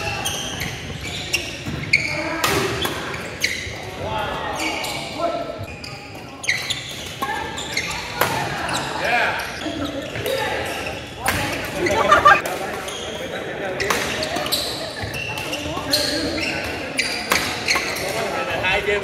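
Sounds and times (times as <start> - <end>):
players' voices: 10.9 - 13.0.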